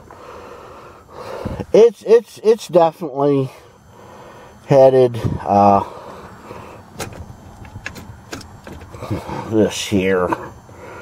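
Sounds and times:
gear shifter clicks and knocks: 6.9 - 9.2.

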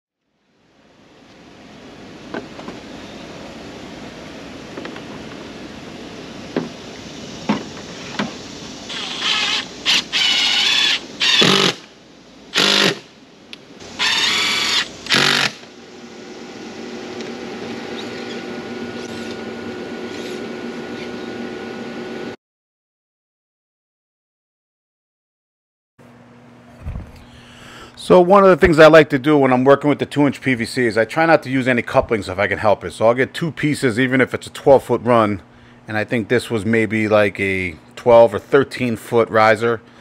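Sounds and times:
cordless drill whining: 8.9 - 11.9, 12.5 - 13.0, 13.9 - 15.7, 17.2 - 21.4
soft steady hum: 26.0 - 40.0.

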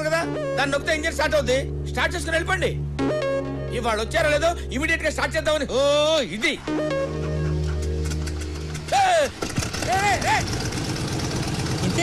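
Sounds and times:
aircraft engine chugging: 7.3 - 12.0
man yelping: 8.9 - 10.6.

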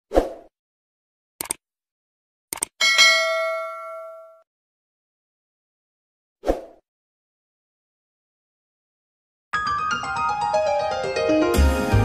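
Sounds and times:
double mouse click: 1.4 - 1.6, 2.5 - 2.7
bright bell ding: 2.8 - 4.4.

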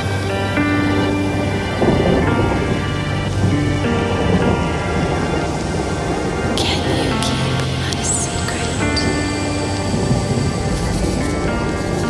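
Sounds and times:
rain pattering: 0.0 - 12.0
slow background music: 0.0 - 12.0
thunder rumbling: 0.0 - 12.0.

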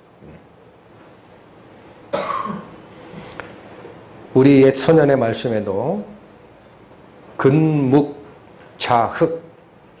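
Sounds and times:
man coughing: 2.1 - 2.8.

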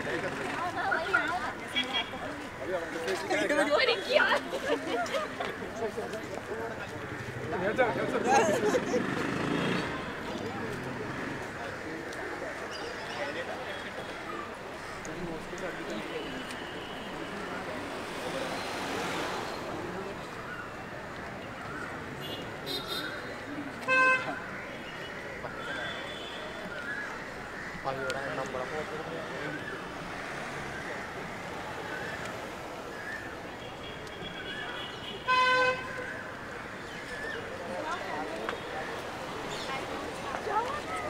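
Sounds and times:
passing cars traffic hum: 0.0 - 12.7, 13.4 - 24.6, 27.3 - 41.0
vehicle horn toot: 23.9 - 24.4, 33.8 - 36.0.

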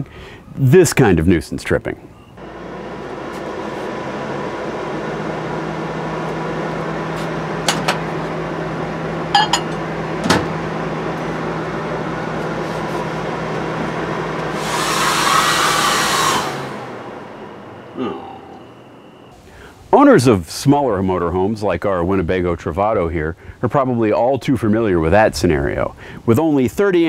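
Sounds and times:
appliances humming: 2.3 - 19.7
hair dryer running: 2.4 - 17.3.

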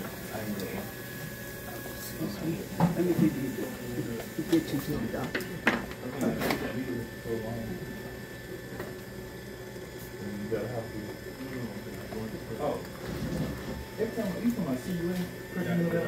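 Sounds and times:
potter's wheel whining and humming: 0.0 - 16.0.

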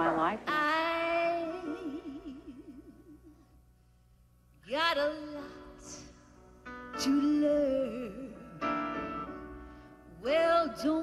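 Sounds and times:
woman singing with vibrato: 0.0 - 3.2, 4.6 - 6.1.

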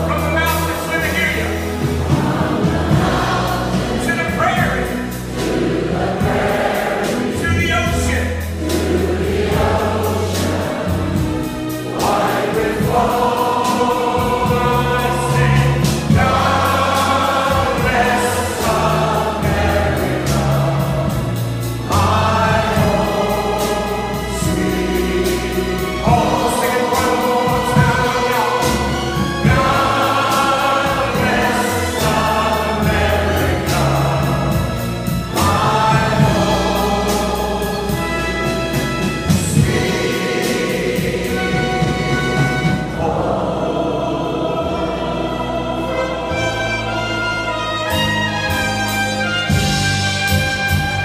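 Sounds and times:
voices singing along: 0.0 - 48.5
symphony orchestra playing: 0.0 - 51.0.

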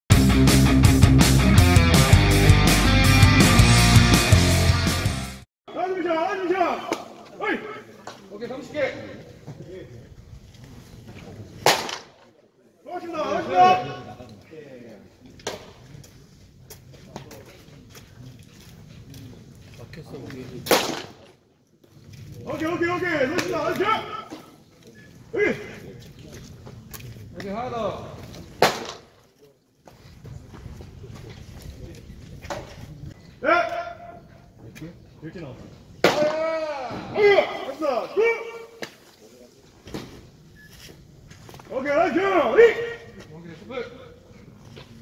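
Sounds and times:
men calling out: 12.9 - 14.3, 22.5 - 24.6, 25.2 - 26.0, 33.3 - 34.4, 36.1 - 38.8, 41.7 - 44.2
baseball smacking into mitt: 36.0 - 36.4.

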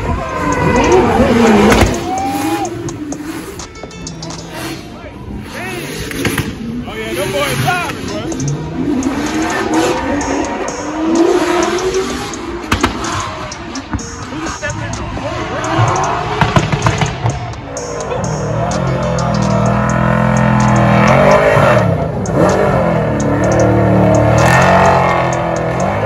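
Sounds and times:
car engines revving: 0.0 - 26.0.

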